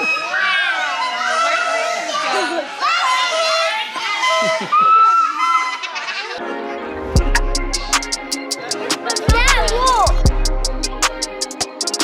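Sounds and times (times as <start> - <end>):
children shouting and squealing: 0.0 - 7.1, 7.8 - 10.3
music track: 6.4 - 12.0.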